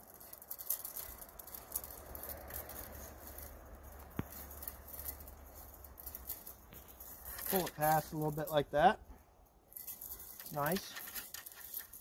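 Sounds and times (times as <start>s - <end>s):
steel wire scraping and ticking: 0.0s - 12.0s.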